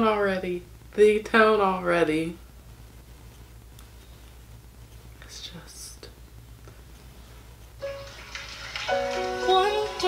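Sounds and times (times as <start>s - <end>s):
faint steady hum: 0.0s - 10.0s
piano notes and chord: 7.8s - 10.0s.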